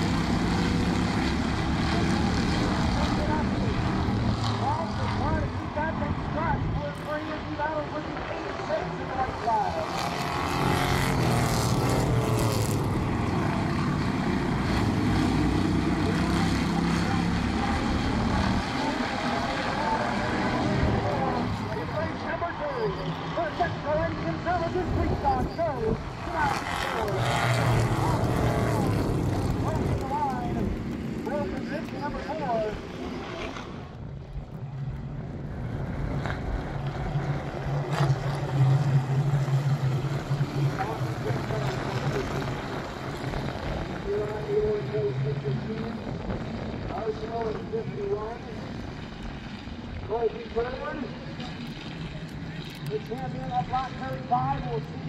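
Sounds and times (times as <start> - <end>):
low engine drone: 0.0 - 55.0
race car engines: 0.0 - 55.0.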